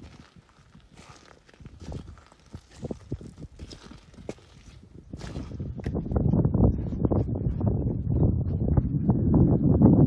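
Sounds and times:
footsteps on pebbles: 0.0 - 6.2.

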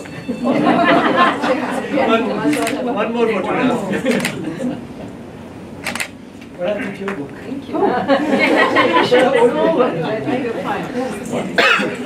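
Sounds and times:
people talking: 0.0 - 4.9, 6.6 - 12.0.

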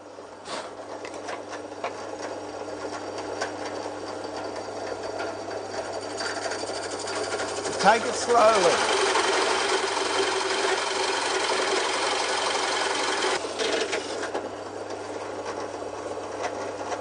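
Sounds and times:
drill press motor hum: 3.2 - 14.6
drill press boring through wood: 4.6 - 14.3.

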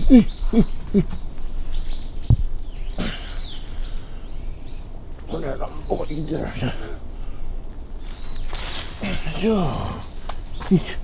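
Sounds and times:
small birds chirping: 0.0 - 11.0
dull thump: 2.3 - 2.6.

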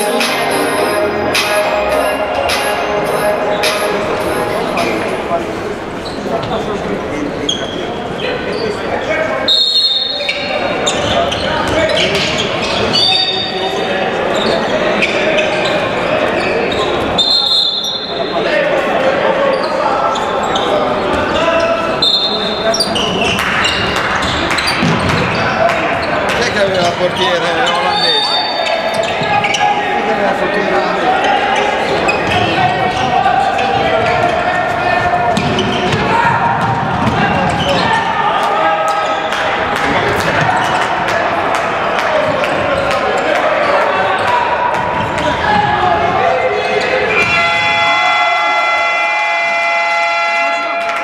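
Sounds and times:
echoing voices: 0.0 - 51.0
ball bouncing on hall floor: 22.7 - 28.0, 33.7 - 38.0.

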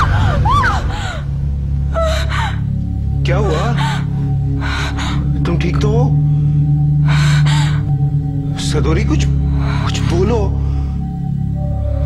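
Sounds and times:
dramatic background music drone: 0.0 - 12.0.

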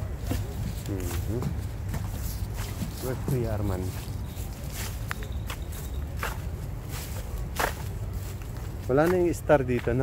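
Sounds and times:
footsteps: 0.0 - 10.0.

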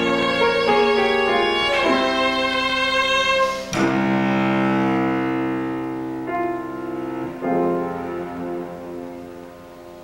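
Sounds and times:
cello and piano chord ringing: 0.0 - 10.0.

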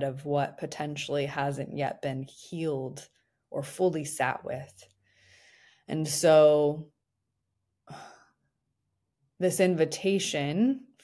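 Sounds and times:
short breath on microphone: 5.0 - 5.8.

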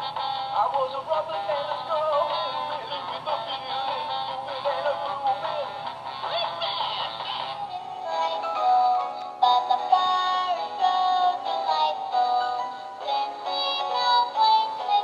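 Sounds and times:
toy playing song through small speaker: 0.0 - 15.0.

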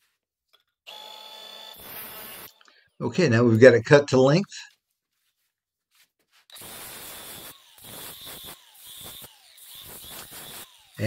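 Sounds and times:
angle grinder grinding metal: 0.9 - 2.7, 6.5 - 11.0.

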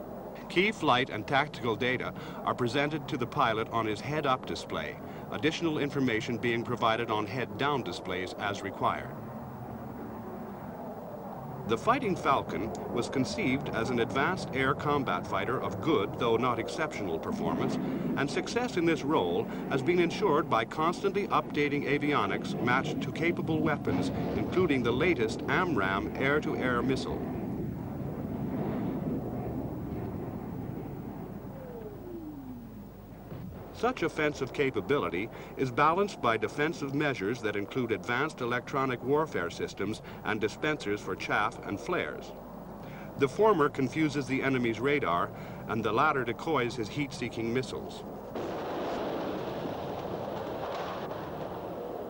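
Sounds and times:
jet aircraft rumble: 0.0 - 52.0
whine falling in pitch: 7.7 - 36.9.

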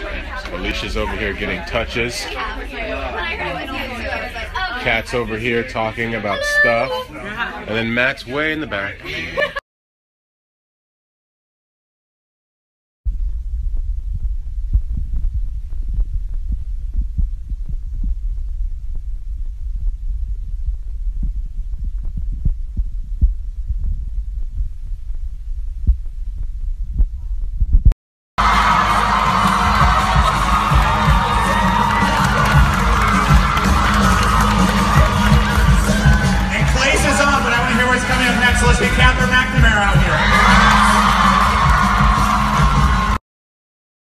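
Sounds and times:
crowd in a hall: 0.0 - 9.6, 28.4 - 43.2
low muffled thumping: 13.1 - 27.9
music: 28.4 - 43.2.

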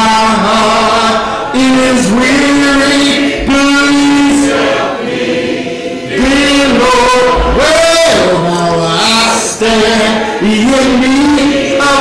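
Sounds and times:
man singing gospel song: 0.0 - 5.0, 6.1 - 12.0.

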